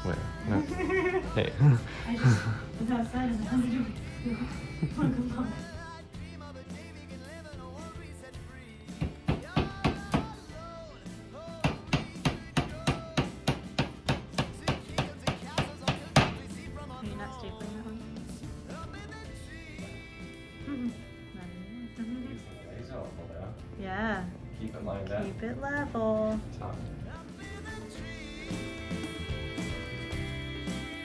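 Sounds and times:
background music with singing: 0.0s - 31.0s
hammer driving nails into wood: 11.6s - 16.4s.

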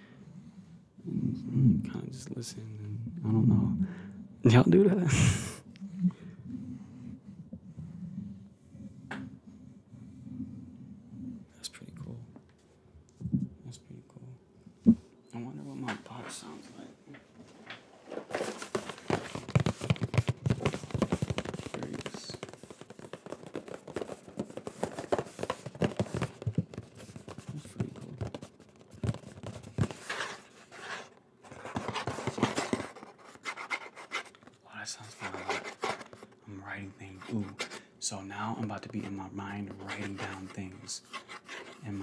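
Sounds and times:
package rustling and crackling: 17.9s - 34.6s.

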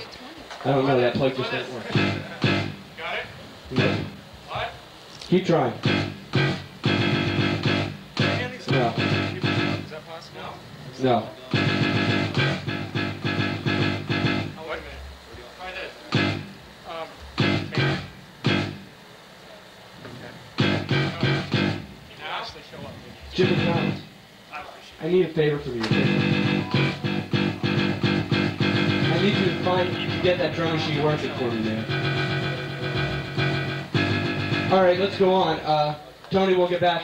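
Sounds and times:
electric guitar strummed chords: 1.9s - 2.9s, 3.7s - 4.2s, 5.7s - 10.0s, 11.5s - 14.8s, 16.1s - 16.6s, 17.4s - 18.9s, 20.6s - 22.0s, 23.3s - 24.1s, 25.8s - 35.7s.

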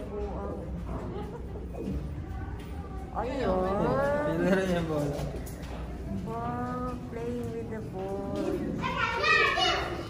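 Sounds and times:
people talking: 0.0s - 10.0s
child's high-pitched voice: 8.4s - 10.0s.

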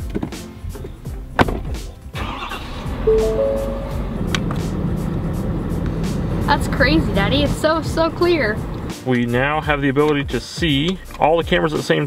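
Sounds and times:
truck engine starting and idling: 2.1s - 9.0s
ignition click: 2.2s - 4.6s.

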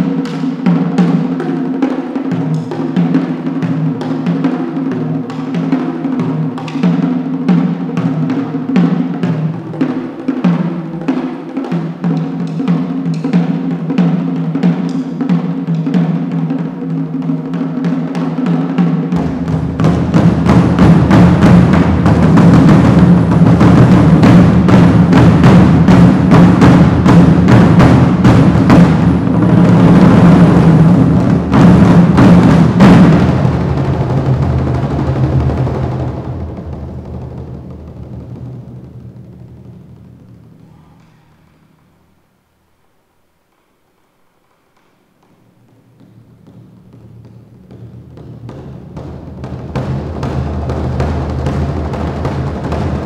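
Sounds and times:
barrel drums playing: 0.0s - 41.4s, 45.4s - 53.0s.

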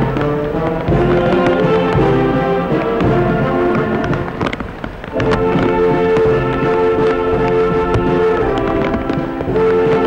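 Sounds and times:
military band music: 0.0s - 10.0s
steady rain hiss: 0.0s - 10.0s.

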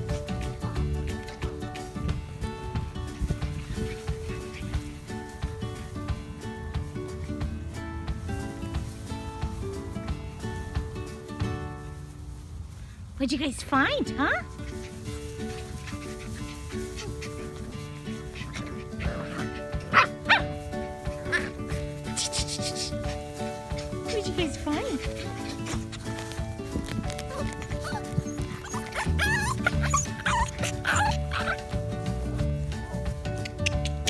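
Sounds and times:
background music: 0.0s - 12.6s, 13.2s - 34.0s
puppies yipping and barking: 2.7s - 5.6s, 14.4s - 32.0s, 32.8s - 34.0s.

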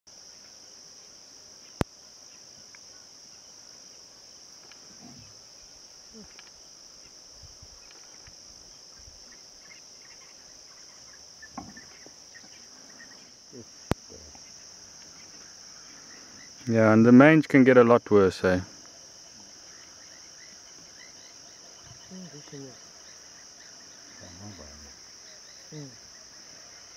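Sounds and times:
crickets chirping: 0.1s - 26.9s.

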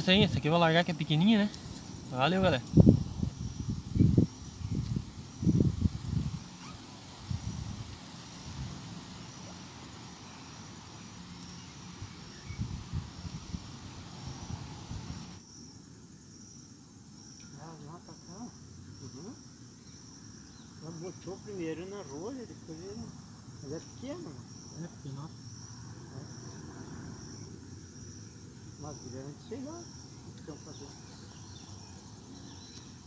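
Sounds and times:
insect chirping: 0.0s - 33.0s.

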